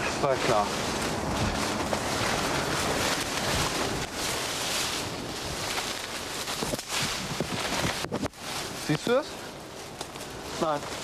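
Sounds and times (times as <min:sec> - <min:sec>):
clothing rubbing on microphone: 0:00.0 - 0:09.2
rustling through dense plants: 0:00.0 - 0:11.0.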